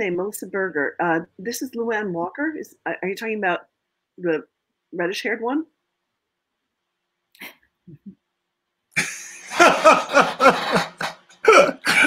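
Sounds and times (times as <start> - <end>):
person laughing heartily: 9.0 - 12.0.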